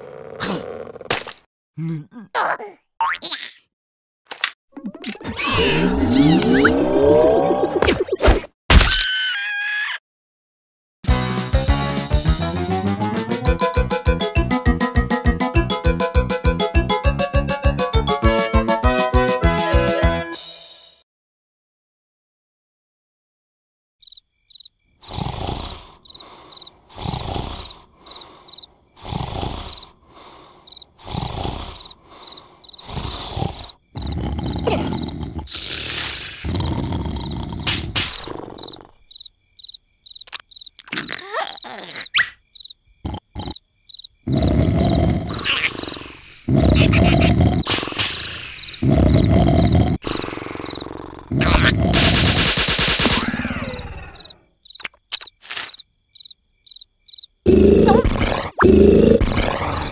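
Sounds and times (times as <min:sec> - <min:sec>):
cartoon snoring: 0:00.0 - 0:01.1, 0:05.4 - 0:07.8, 0:25.0 - 0:39.1, 0:43.0 - 0:43.6, 0:44.2 - 0:52.4, 0:53.1 - 0:54.4, 0:57.4 - 0:59.9
crickets chirping: 0:24.0 - 0:51.4, 0:53.4 - 0:59.9.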